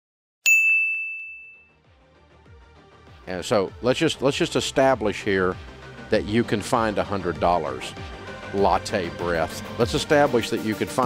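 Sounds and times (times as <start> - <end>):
bell-like ding: 0.5 - 1.8.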